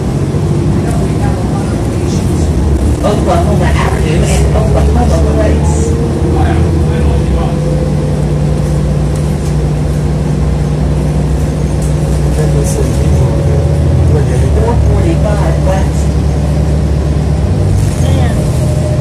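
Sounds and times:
bus engine droning: 0.0 - 19.0
faint passenger voices: 0.0 - 19.0
road noise: 0.0 - 19.0.

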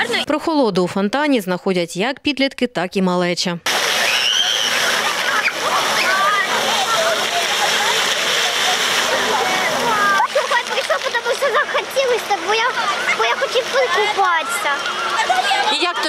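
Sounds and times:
fountain water jets spraying: 3.7 - 16.0
children shouting and squealing: 3.9 - 16.0.

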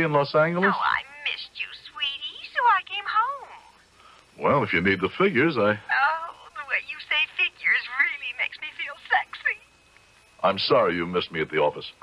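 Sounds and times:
person talking over telephone: 0.0 - 3.6.

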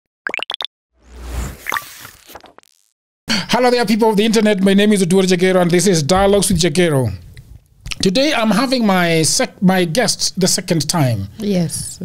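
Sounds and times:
pops rising in pitch: 0.2 - 2.9.

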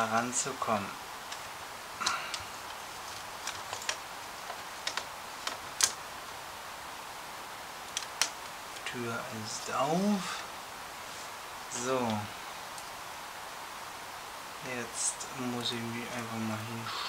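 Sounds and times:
plastic model parts clicking: 4.8 - 6.0.

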